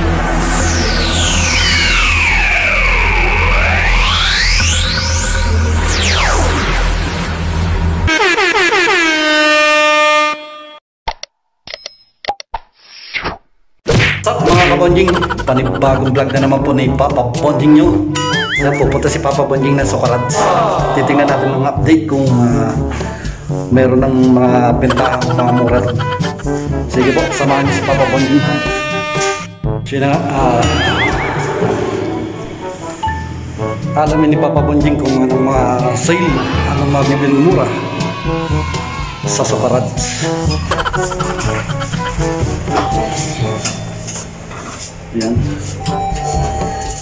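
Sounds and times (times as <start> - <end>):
electronic music: 0.0 - 8.9, 14.5 - 17.0, 18.1 - 19.2, 24.6 - 34.0, 35.6 - 44.2
buzzy horn sound effect: 0.0 - 10.8, 26.2 - 33.9.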